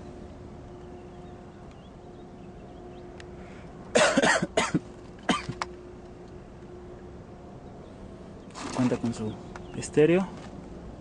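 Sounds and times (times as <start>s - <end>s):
person coughing: 3.9s - 5.6s.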